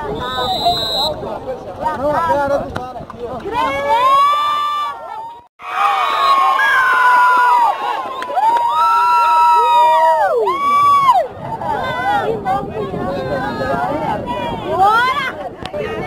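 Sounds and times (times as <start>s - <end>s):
spectators cheering and yelling: 3.5s - 16.0s.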